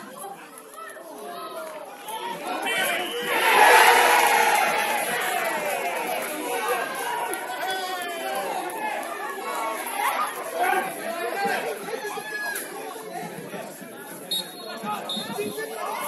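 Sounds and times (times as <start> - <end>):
referee's whistle blasts: 2.6 - 3.4, 14.3 - 15.6.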